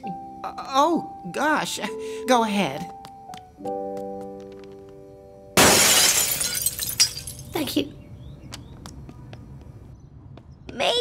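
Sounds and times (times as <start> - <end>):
glass window shattering: 5.6 - 7.5
tinkle of falling glass shards: 5.6 - 7.5.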